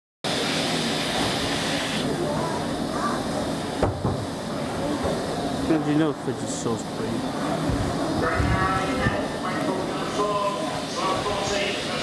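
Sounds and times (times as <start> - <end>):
steam hissing: 0.3 - 12.0.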